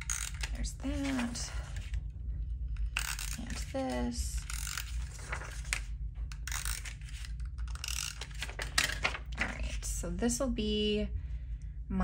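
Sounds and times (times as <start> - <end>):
paper rustling: 0.0 - 2.0, 3.0 - 9.9.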